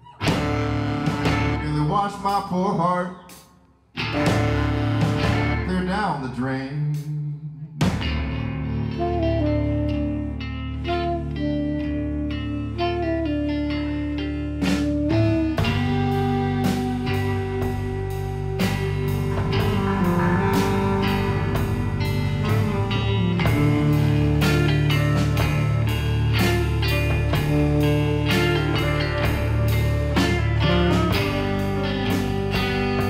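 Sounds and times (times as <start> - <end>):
electric guitars: 0.0 - 2.2, 3.3 - 33.0
drum kit beat: 0.0 - 2.5, 3.3 - 6.0, 7.8 - 8.5, 14.5 - 33.0
bass line: 0.0 - 33.0.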